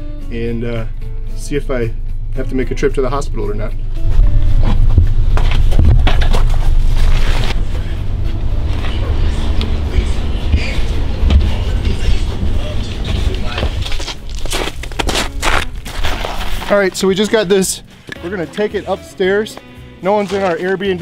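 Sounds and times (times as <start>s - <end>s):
plastic bucket being carried: 4.2s - 7.6s.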